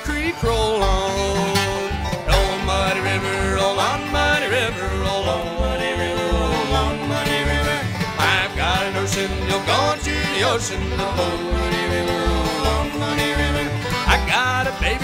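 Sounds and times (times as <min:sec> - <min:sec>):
acoustic guitar: 0:00.0 - 0:15.0
banjo: 0:00.0 - 0:15.0
fiddle melody: 0:00.0 - 0:15.0
upright bass: 0:00.0 - 0:15.0.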